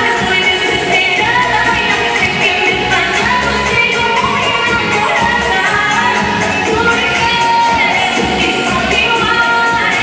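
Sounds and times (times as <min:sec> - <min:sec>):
loud music with singing: 0:00.0 - 0:10.0.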